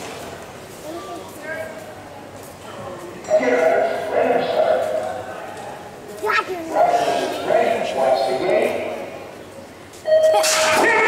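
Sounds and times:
voices in a large hall: 0:00.0 - 0:11.0.

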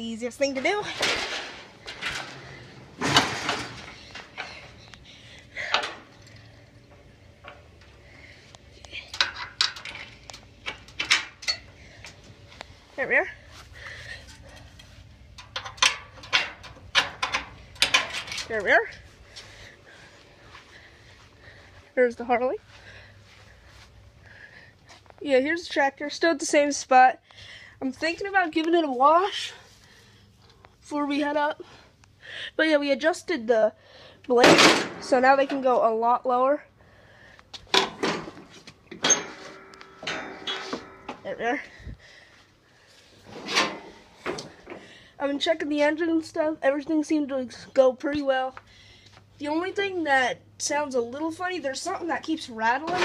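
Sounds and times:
knocks and clatters: 0:37.7 - 0:41.2.

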